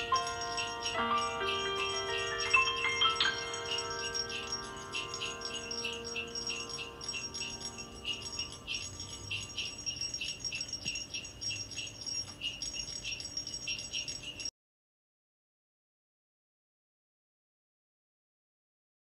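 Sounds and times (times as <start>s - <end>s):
held musical chord: 0.0s - 11.0s
sleigh bells shaking: 0.0s - 14.5s.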